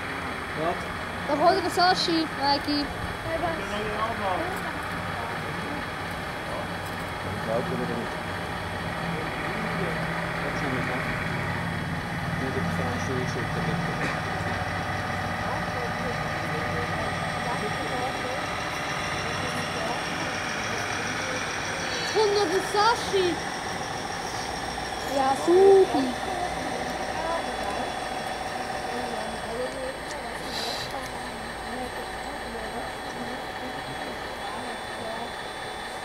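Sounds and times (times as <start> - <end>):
simulated diesel engine idling: 0.0 - 36.0.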